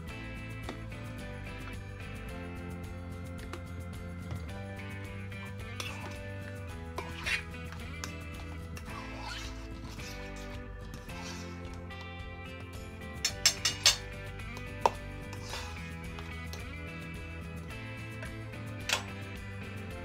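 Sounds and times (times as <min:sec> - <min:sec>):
background music: 0:00.0 - 0:20.0
utensils clinking on metal bowl: 0:13.2 - 0:17.2.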